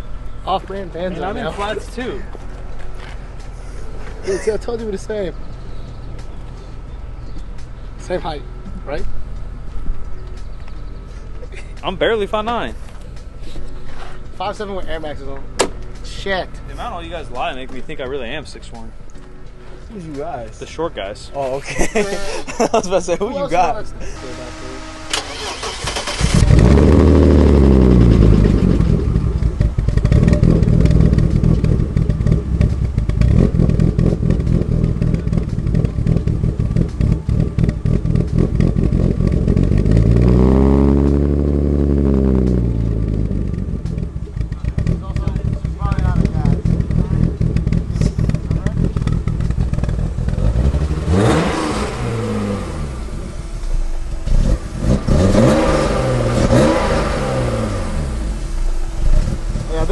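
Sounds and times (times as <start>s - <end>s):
car engine idling and revving: 0.0s - 59.9s.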